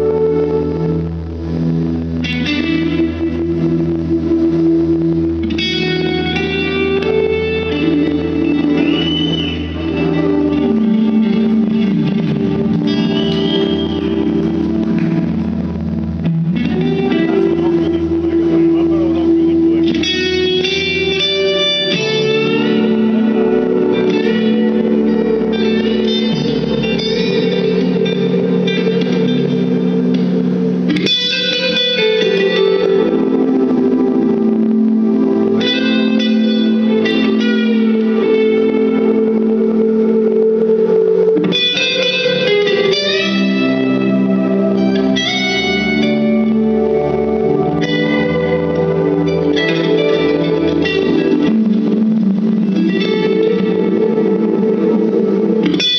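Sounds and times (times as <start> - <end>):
electric guitars with effects: 0.0 - 55.9
live rock band playing: 1.6 - 55.9.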